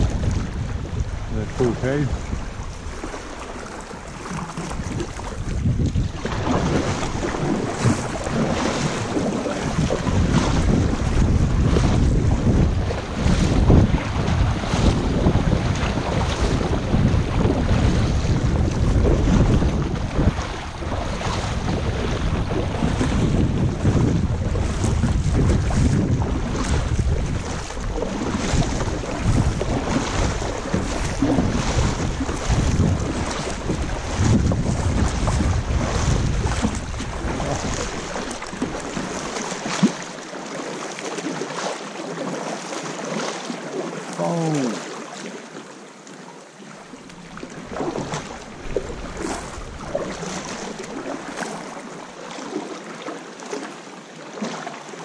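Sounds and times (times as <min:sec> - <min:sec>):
wind buffeting microphone: 0:00.0 - 0:39.8, 0:47.4 - 0:51.6
kayak paddle dipping: 0:00.0 - 0:55.0
sea water lapping and splashing: 0:00.0 - 0:55.0.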